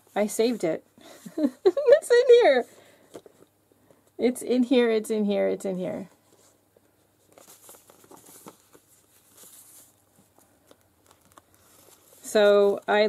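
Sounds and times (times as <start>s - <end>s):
paper rustling and crinkling: 6.2s - 13.0s.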